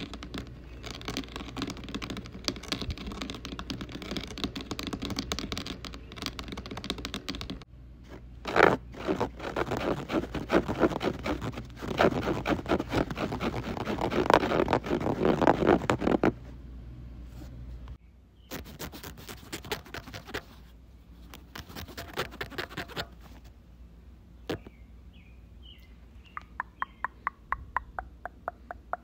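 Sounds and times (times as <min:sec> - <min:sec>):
fast tapping and scratching: 0:00.0 - 0:07.6, 0:08.5 - 0:16.3, 0:18.5 - 0:20.5, 0:21.4 - 0:23.1.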